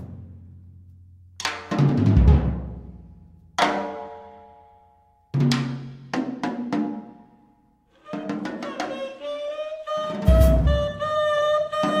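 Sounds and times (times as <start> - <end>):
horn holding notes: 8.0 - 12.0
drum kit strikes: 10.3 - 11.0.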